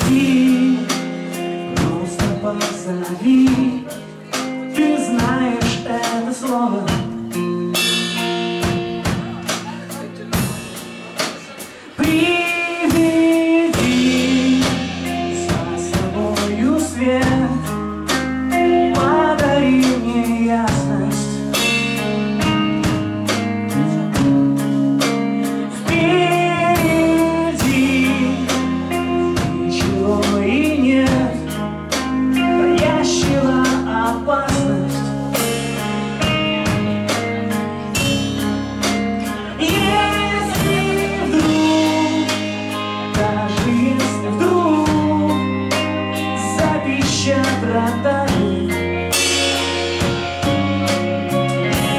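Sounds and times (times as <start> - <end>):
bass guitar: 0.0 - 51.9
drum kit: 0.0 - 51.9
electric guitars: 0.0 - 51.9.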